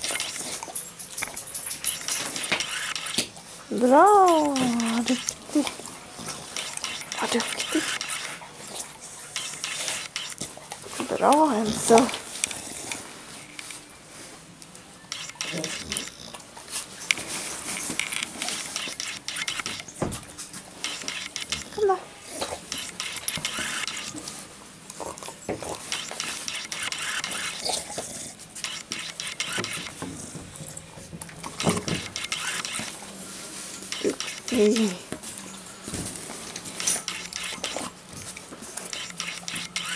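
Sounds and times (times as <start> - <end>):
dog claws clicking on tiles: 4.0 - 5.4, 15.4 - 16.4, 33.9 - 35.1.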